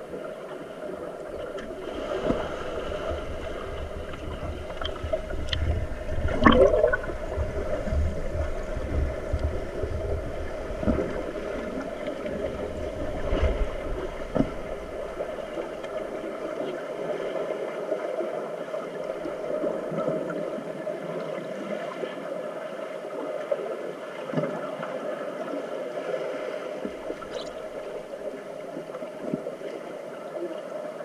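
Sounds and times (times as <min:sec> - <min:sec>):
steady underwater hum: 0:00.0 - 0:31.0
water churned by swimmers: 0:00.0 - 0:31.0
low rumbling: 0:01.4 - 0:16.5
air bubbles rising: 0:03.9 - 0:08.8.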